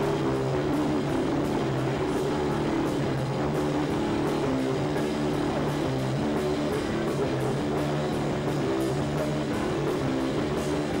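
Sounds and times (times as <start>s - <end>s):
drums: 0.0s - 11.0s
electric guitars and bass droning: 0.0s - 11.0s.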